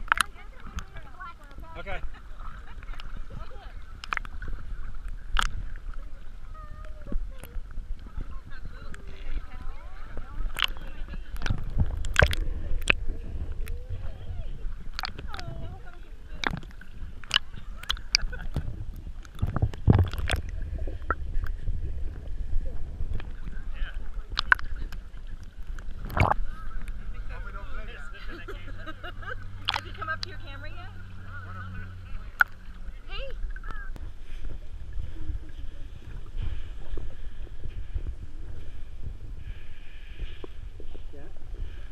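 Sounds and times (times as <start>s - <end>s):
sharp water splashes: 0.0s - 1.6s, 2.3s - 6.6s, 10.3s - 13.9s, 14.8s - 21.6s, 24.1s - 27.0s, 29.4s - 31.2s, 32.2s - 34.1s
seawater sloshing against camera: 0.0s - 41.9s
water rumble on microphone: 0.0s - 41.9s.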